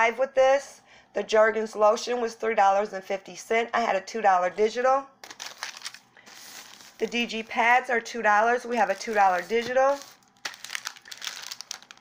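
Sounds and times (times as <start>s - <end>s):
plastic packaging crinkling: 5.2s - 7.6s, 8.8s - 12.0s.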